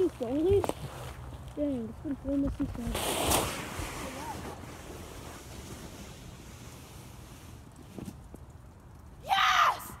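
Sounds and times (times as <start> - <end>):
sled scraping over snow: 2.5 - 8.4.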